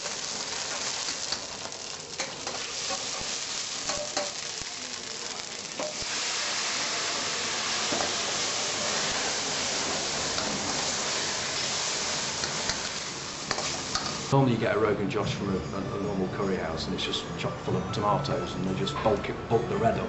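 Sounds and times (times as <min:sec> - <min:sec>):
food sizzling in pans: 0:00.0 - 0:14.3.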